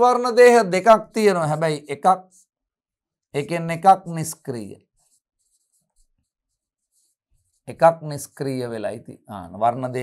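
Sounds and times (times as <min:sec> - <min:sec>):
man speaking: 0:00.0 - 0:02.2, 0:03.4 - 0:04.8, 0:07.7 - 0:10.0
pen strokes on board: 0:05.0 - 0:07.6.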